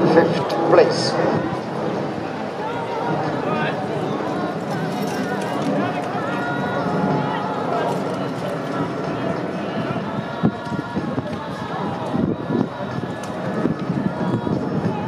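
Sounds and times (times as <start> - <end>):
indistinct talk of onlookers: 0.0 - 15.0.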